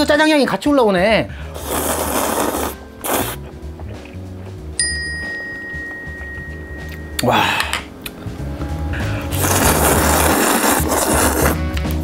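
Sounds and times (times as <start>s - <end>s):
background music: 0.0s - 12.0s
noodles slurped: 1.5s - 3.5s, 9.0s - 11.6s
bell-like ding: 4.8s - 7.7s.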